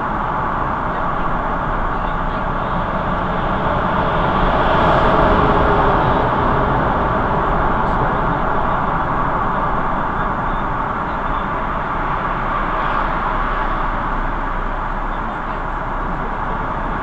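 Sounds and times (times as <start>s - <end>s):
traffic echoing in a tunnel: 0.0s - 17.0s.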